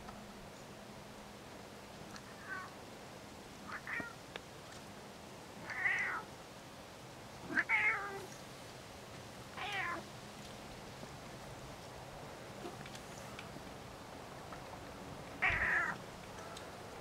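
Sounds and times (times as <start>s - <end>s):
cat meowing: 2.4s - 2.7s, 3.7s - 4.2s, 5.6s - 6.3s, 7.5s - 8.3s, 9.6s - 10.0s, 15.4s - 16.0s.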